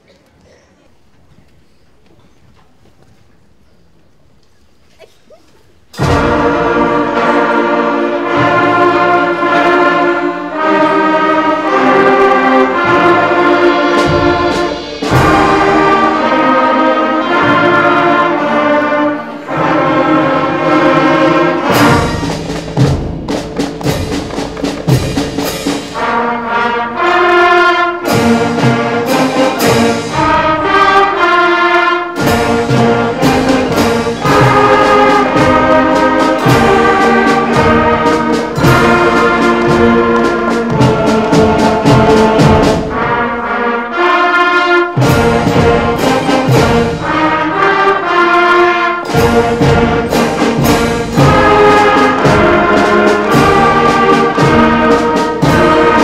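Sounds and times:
drum strikes: 0:05.9 - 0:27.3, 0:28.0 - 0:31.2, 0:32.1 - 0:43.5, 0:44.9 - 0:48.2, 0:49.0 - 0:56.0
concert band playing chords: 0:05.9 - 0:56.0.

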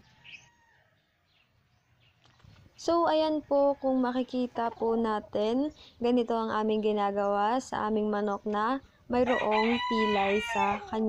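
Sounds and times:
faint bird chirp: 0:03.7 - 0:07.8.

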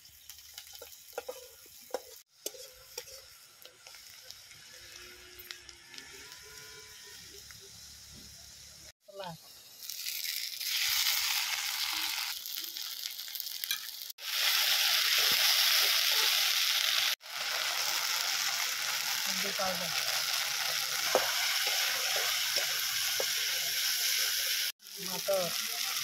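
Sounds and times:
oil sizzling loudly: 0:00.0 - 0:26.0.

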